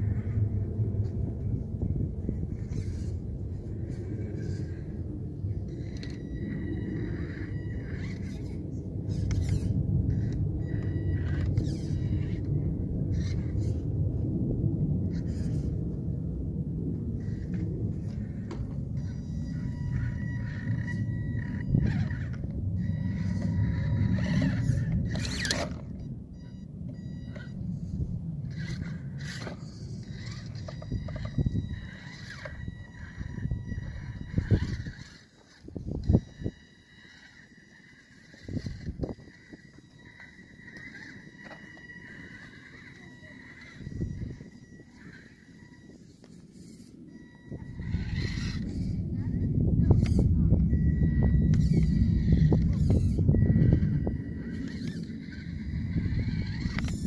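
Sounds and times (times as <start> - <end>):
electric motor whining: 0.0 - 14.0, 15.0 - 16.1, 17.0 - 57.0
low rumble: 0.0 - 35.1, 46.5 - 57.0.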